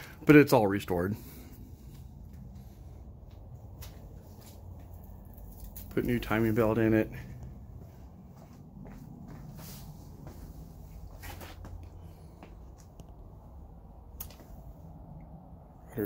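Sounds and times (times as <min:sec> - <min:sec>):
low steady hum: 0:00.0 - 0:16.0
faint footsteps: 0:01.2 - 0:14.8.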